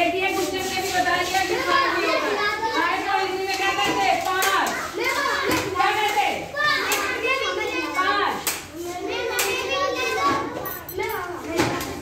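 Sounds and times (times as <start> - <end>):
children chattering: 1.4 - 12.0.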